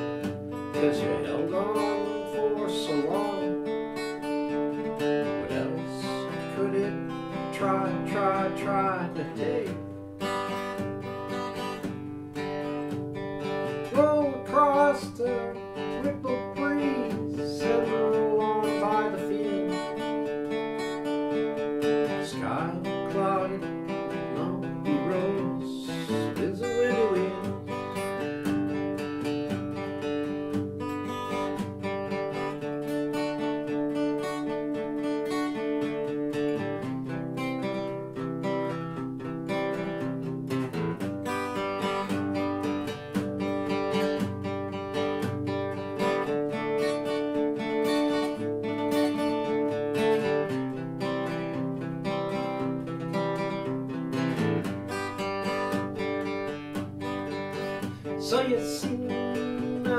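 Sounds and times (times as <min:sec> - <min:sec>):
acoustic guitar strumming chords: 0:00.0 - 0:59.9.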